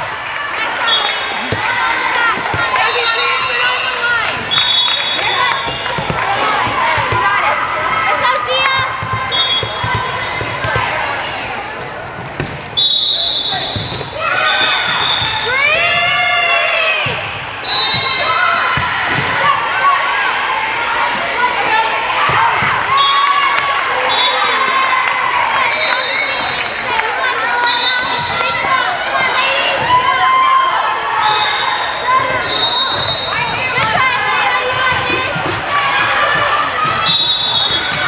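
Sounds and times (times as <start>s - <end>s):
voices of players and spectators: 0.0s - 38.0s
sneakers squeaking on court: 13.5s - 16.0s.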